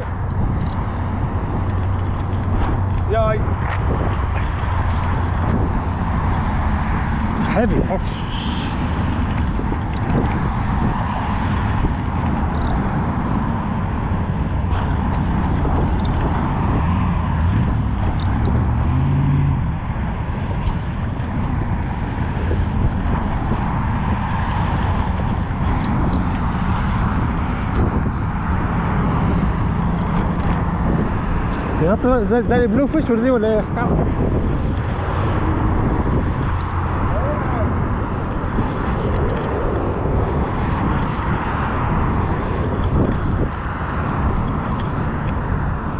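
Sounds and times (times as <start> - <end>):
wind rumbling on microphone: 0.0 - 45.9.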